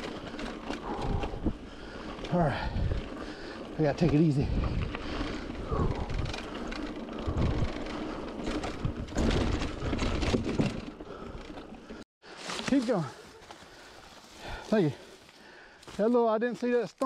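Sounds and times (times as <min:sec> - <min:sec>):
heavy breathing: 0:00.0 - 0:09.0, 0:09.7 - 0:12.4, 0:13.1 - 0:16.0
bike rattling over bumps: 0:00.0 - 0:14.7
bike tyres on dirt trail: 0:00.0 - 0:17.0.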